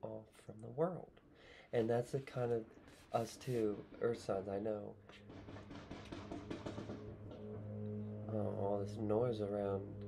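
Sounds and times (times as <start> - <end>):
low drone of engines: 5.0 - 10.0.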